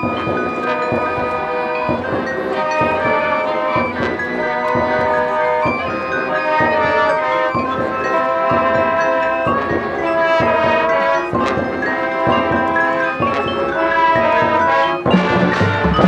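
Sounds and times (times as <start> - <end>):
bell-like mallet percussion: 0.0 - 16.0
marching band playing: 0.0 - 16.0.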